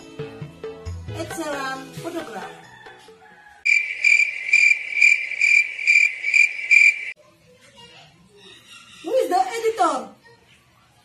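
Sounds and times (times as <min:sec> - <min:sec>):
cricket chirping trill: 0:03.7 - 0:07.2.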